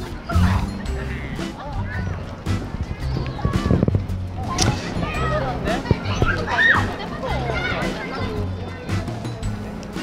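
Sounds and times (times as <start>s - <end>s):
light background music: 0.0s - 10.0s
young women laughing and squealing: 6.1s - 7.6s.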